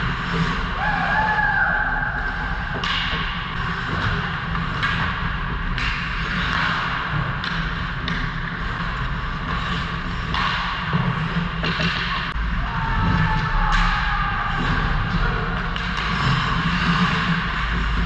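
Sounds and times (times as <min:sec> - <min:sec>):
low rink hum: 0:00.0 - 0:18.0
sticks and puck knocking: 0:02.7 - 0:12.4
skate blades scraping ice: 0:03.5 - 0:12.3, 0:14.6 - 0:18.0.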